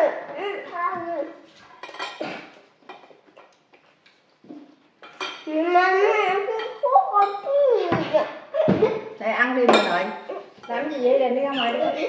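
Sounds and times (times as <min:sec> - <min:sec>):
cutlery and dishes clinking: 0:01.6 - 0:05.6, 0:06.5 - 0:09.0, 0:09.6 - 0:11.1.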